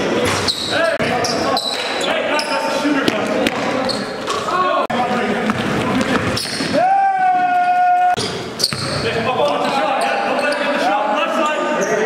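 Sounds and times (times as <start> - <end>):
players' voices: 0.0 - 12.0
basketball bouncing on hardwood: 5.4 - 6.7.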